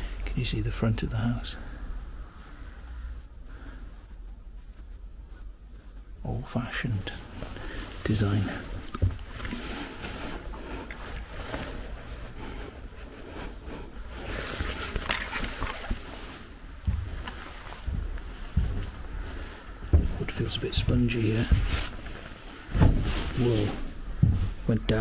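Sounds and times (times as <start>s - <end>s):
rustling: 1.6s - 25.0s
heavy low thumps: 16.6s - 21.8s, 23.9s - 25.0s
footsteps on wooden floorboards: 16.7s - 25.0s.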